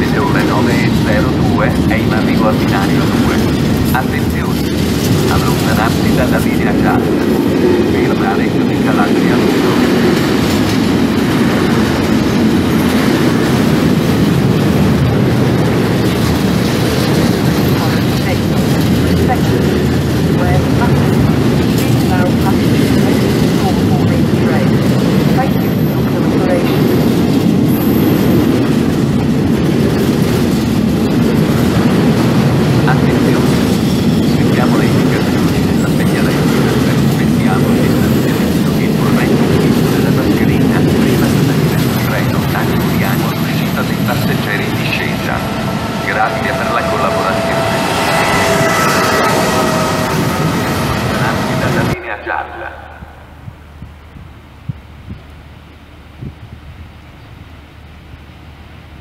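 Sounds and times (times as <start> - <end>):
freight train wheels rumbling: 0.0 - 59.0
high-pitched wheel squeals: 45.4 - 52.0.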